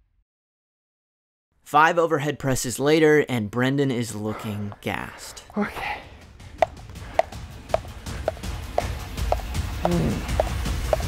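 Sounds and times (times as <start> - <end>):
background music with low bass: 6.0 - 11.0.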